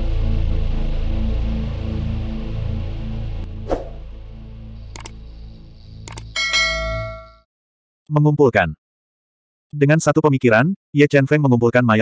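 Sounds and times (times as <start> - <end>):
quick clicks: 4.9 - 5.2, 6.0 - 6.4
bright bell ding: 6.4 - 7.5.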